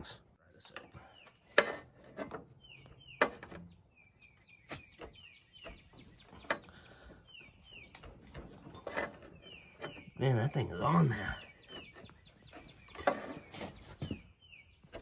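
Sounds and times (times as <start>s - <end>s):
bird chirping: 0.0s - 15.0s.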